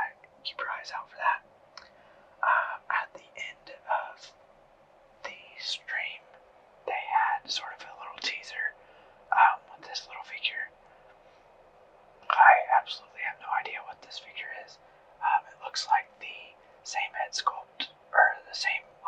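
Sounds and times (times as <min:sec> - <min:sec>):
person whispering: 0:00.0 - 0:04.3, 0:05.2 - 0:06.3, 0:06.9 - 0:10.7, 0:12.2 - 0:19.0.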